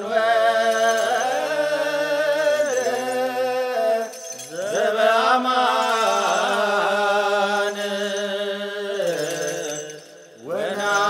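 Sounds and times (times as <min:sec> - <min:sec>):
voices chanting a hymn: 0:00.0 - 0:11.0.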